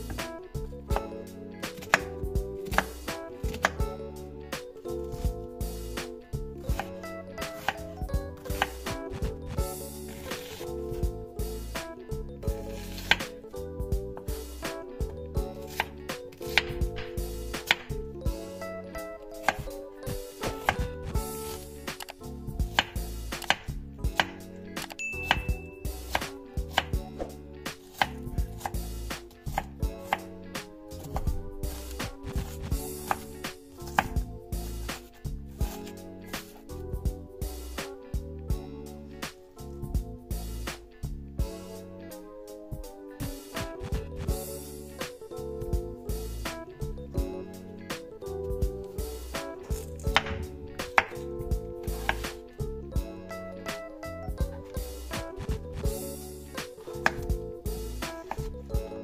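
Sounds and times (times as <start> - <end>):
knife chopping on wooden board: 0.9 - 3.8, 6.7 - 7.8, 8.5 - 9.5, 10.1 - 10.7, 12.8 - 13.3, 15.6 - 17.9, 19.4 - 27.3, 27.9 - 30.3, 31.0 - 34.3, 49.7 - 51.2, 51.8 - 52.4, 57.0 - 57.3.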